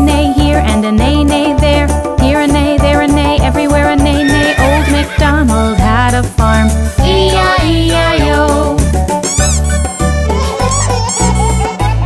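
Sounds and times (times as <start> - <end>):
upbeat children's song music: 0.0 - 12.0
cartoon horse whinny: 4.2 - 5.2.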